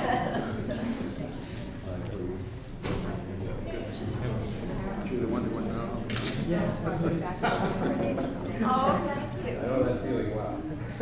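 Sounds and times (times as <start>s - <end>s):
camera shutter clicking: 6.1s - 6.5s.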